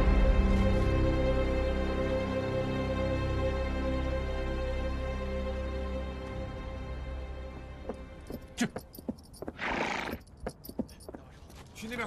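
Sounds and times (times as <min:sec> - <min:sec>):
hoof clops: 0:07.9 - 0:11.7
horse neighing: 0:09.5 - 0:10.3.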